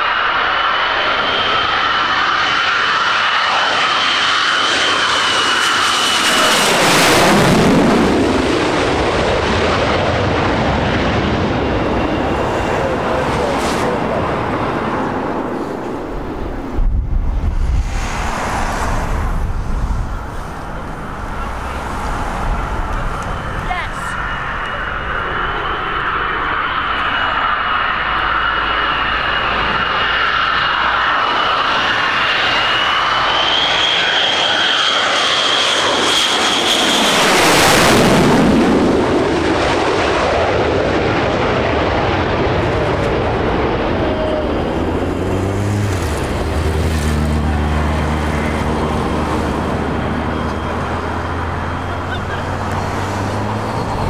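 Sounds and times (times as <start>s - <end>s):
jet engine passing overhead: 0.0s - 54.0s.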